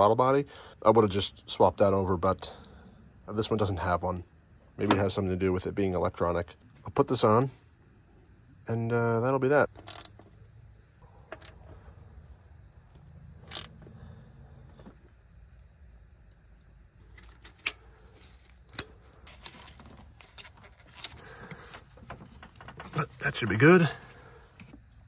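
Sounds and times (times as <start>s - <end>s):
socket ratchet metallic clicks: 13.4s - 13.8s.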